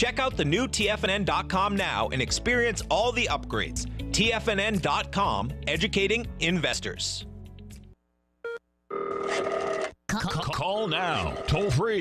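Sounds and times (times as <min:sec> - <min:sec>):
telephone ringing: 0:08.5 - 0:09.9, 0:11.0 - 0:11.8.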